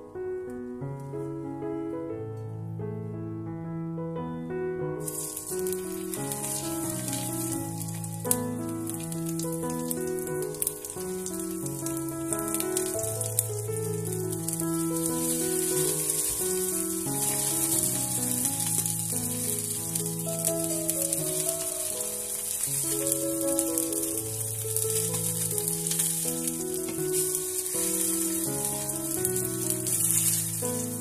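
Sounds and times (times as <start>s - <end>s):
soft piano music: 0.0s - 31.0s
fish sizzling in a frying pan: 5.0s - 31.0s
sharp pops of frying: 5.0s - 31.0s.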